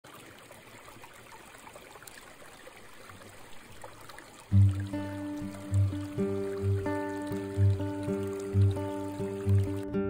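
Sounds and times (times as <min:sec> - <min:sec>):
stream trickling over pebbles: 0:00.0 - 0:10.0.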